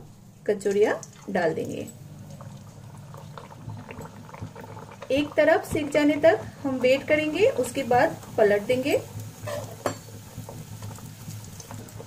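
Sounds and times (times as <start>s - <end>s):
oil bubbling and sizzling: 0.0s - 12.0s.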